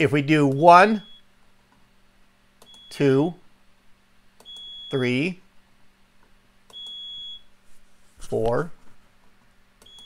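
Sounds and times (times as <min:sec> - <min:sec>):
high-pitched alarm beep: 0:00.5 - 0:01.3, 0:02.6 - 0:03.2, 0:04.4 - 0:05.2, 0:06.7 - 0:07.5
click: 0:02.6 - 0:02.9, 0:09.8 - 0:10.0.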